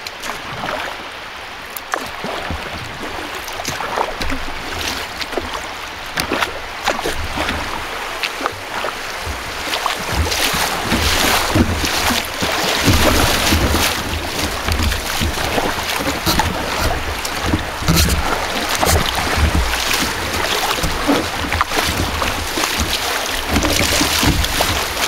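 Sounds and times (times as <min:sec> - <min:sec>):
rapids splashing against kayak: 0:00.0 - 0:25.0.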